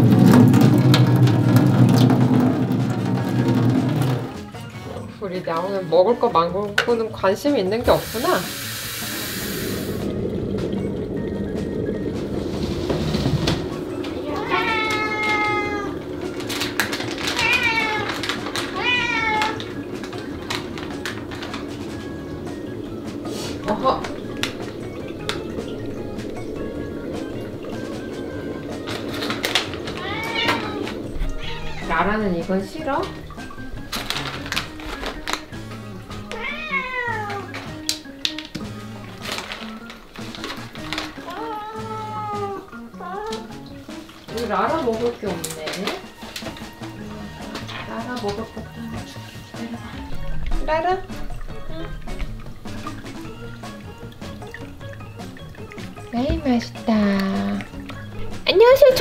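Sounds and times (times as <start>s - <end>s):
background music: 0.0s - 59.0s
bag of treats rustling: 9.9s - 32.3s, 33.0s - 41.8s, 44.1s - 48.5s
cat meowing: 14.2s - 16.0s, 17.2s - 19.9s, 29.8s - 32.2s, 36.2s - 37.6s, 41.3s - 43.5s.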